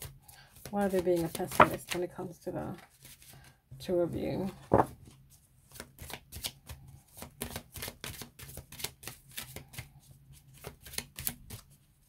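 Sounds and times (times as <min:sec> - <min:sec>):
cards being shuffled: 0:00.0 - 0:02.1, 0:04.5 - 0:11.8.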